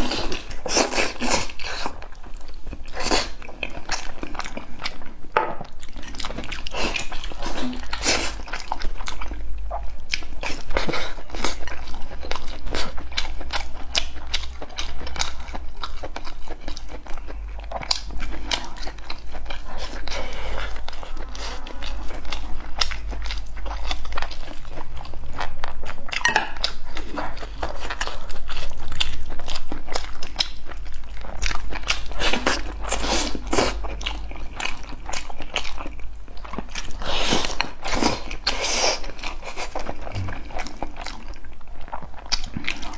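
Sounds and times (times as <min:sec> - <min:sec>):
chewing with lip smacks: 0:00.0 - 0:42.9
low steady hum: 0:00.0 - 0:42.9.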